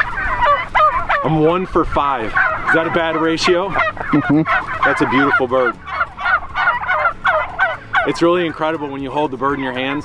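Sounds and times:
turkey calling: 0:00.0 - 0:10.0.

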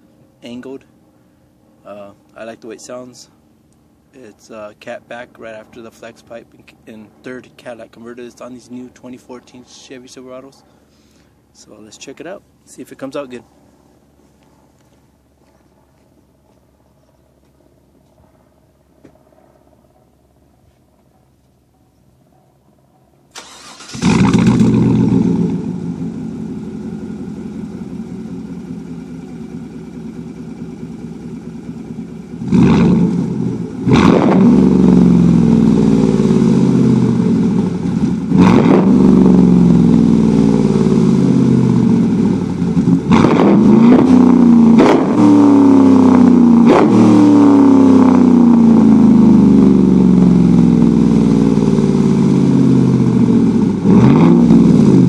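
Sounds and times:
truck engine cranking and starting: 0:23.3 - 0:26.1
engine idling: 0:23.3 - 0:34.0, 0:34.6 - 0:44.9, 0:47.5 - 0:55.0
engine revving: 0:23.4 - 0:27.9, 0:32.4 - 0:55.0.

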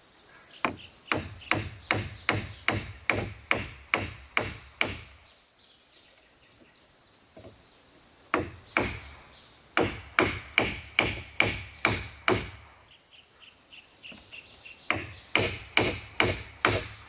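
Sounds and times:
hammer striking nail into wood: 0:00.7 - 0:05.2, 0:08.4 - 0:09.1, 0:09.8 - 0:12.6, 0:14.9 - 0:17.0.

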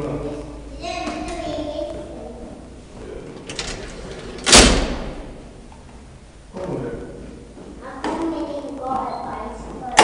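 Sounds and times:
elevator door banging shut: 0:03.4 - 0:05.6.

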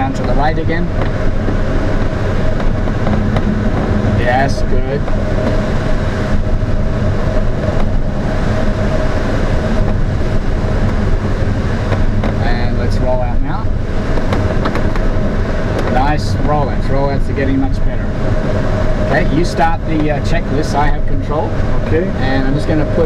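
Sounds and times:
airflow rushing in glider cockpit: 0:00.0 - 0:23.0
voices talking: 0:04.1 - 0:05.1, 0:15.9 - 0:18.2, 0:19.0 - 0:23.0.

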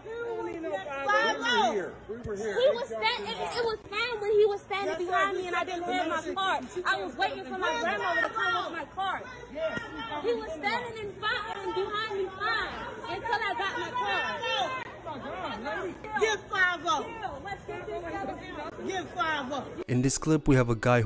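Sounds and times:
people talking over each other: 0:00.0 - 0:21.0.

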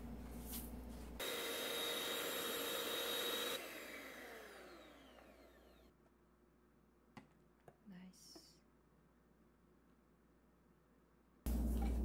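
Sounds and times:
electric hand mixer whining: 0:01.2 - 0:05.9.

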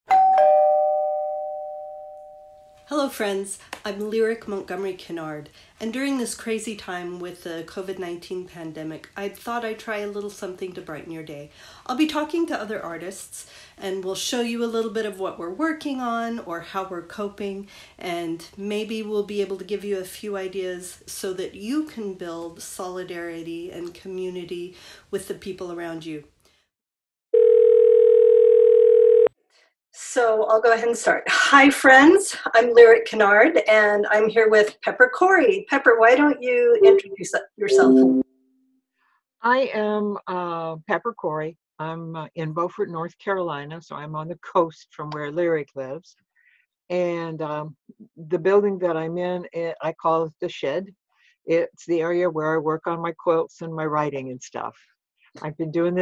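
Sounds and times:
two-note chime: 0:00.1 - 0:02.8, 0:37.7 - 0:38.4
steady electronic tone: 0:36.8 - 0:38.4.

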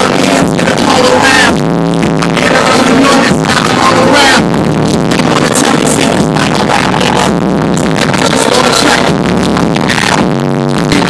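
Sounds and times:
loud hip-hop concert music: 0:00.0 - 0:11.0.

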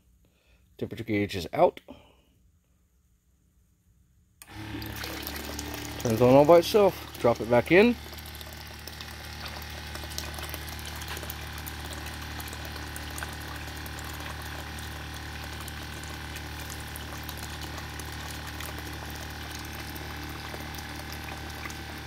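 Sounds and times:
pump humming: 0:04.4 - 0:22.0
liquid splashing into tank: 0:04.5 - 0:22.0.

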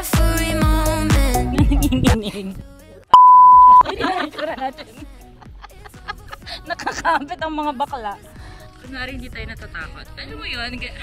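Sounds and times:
censor bleep: 0:03.2 - 0:03.8.

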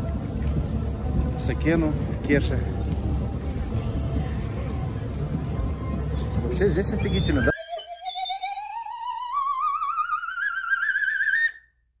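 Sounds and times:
warbling electronic tone gliding upward: 0:07.3 - 0:11.6.

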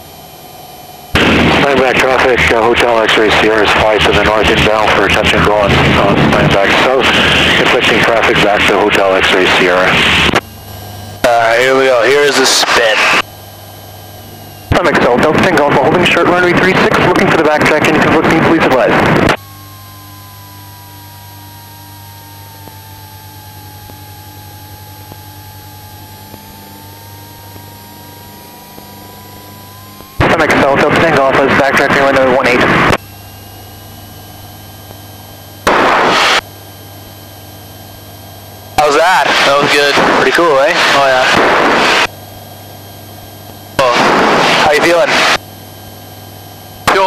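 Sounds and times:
airplane engine and propeller drone: 0:00.0 - 0:47.0
intercom hum: 0:00.0 - 0:47.0.

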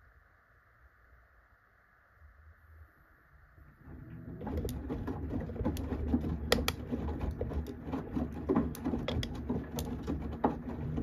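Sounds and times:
washing machine motor hum: 0:03.6 - 0:11.0
wet laundry sloshing in drum: 0:03.9 - 0:11.0.

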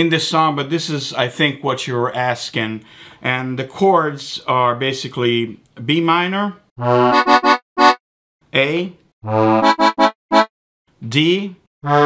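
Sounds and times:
accordion chords: 0:06.8 - 0:08.0, 0:09.2 - 0:10.5.

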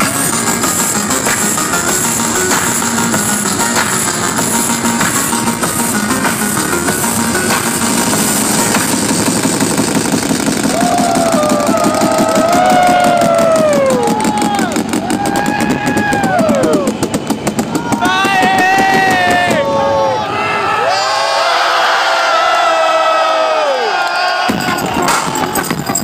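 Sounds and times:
gliding synthesizer tones: 0:00.0 - 0:17.7
fast stuttering pulse: 0:00.0 - 0:19.6
noisy synthesizer texture: 0:00.0 - 0:21.0.

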